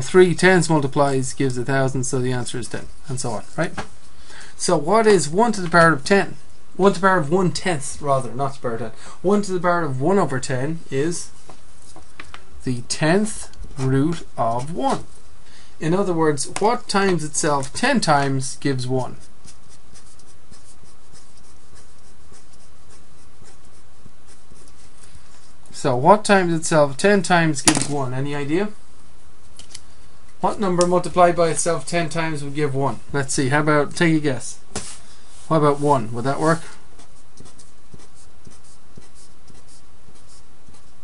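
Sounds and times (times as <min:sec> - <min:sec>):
steady background hiss: 0:00.0 - 0:41.0
steady low hum: 0:00.0 - 0:41.0
pen scratching on paper: 0:19.1 - 0:25.6, 0:36.4 - 0:41.0
pen writing strokes: 0:37.0 - 0:41.0.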